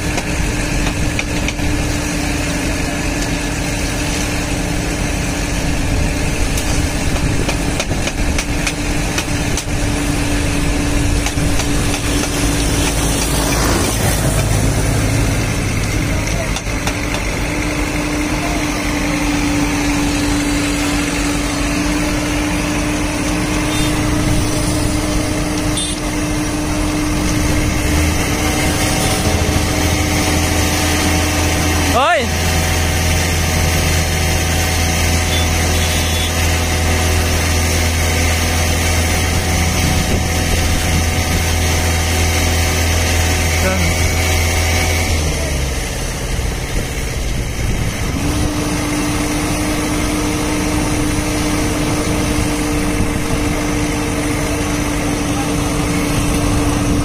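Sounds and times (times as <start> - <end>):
excavator diesel engine humming: 0.0 - 57.0.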